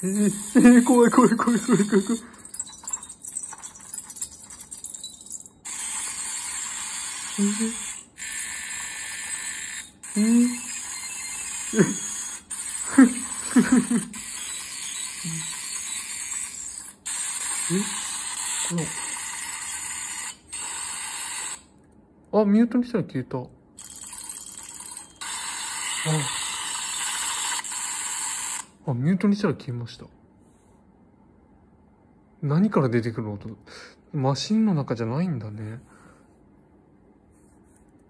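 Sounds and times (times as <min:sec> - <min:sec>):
harsh screaming glitch noise: 0:05.8 - 0:19.4.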